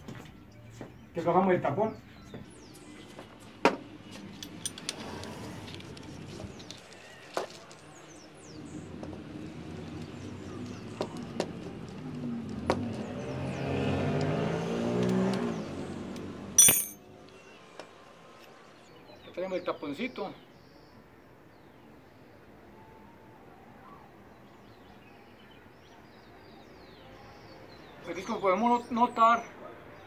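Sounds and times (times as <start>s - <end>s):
vehicle engine hum: 2.2s - 16.6s
sharp metal clank: 16.6s - 17.0s.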